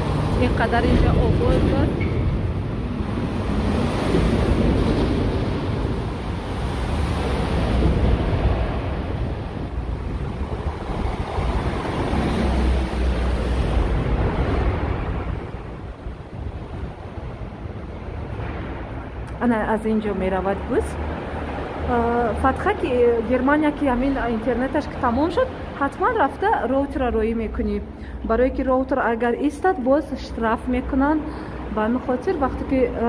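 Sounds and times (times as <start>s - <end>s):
wind buffeting microphone: 0.0s - 28.3s
road traffic roar: 0.0s - 33.0s.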